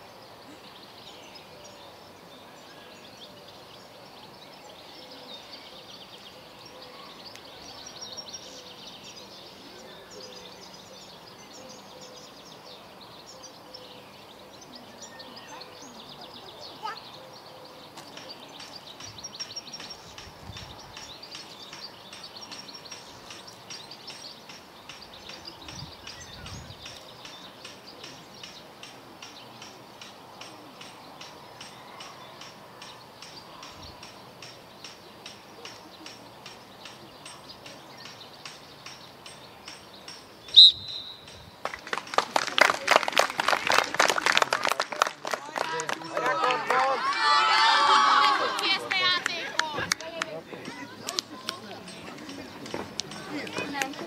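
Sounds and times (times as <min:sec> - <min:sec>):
bird chirping: 0:00.0 - 0:41.6
referee's whistle blast: 0:40.6 - 0:41.2
spectators clapping: 0:41.6 - 0:54.0.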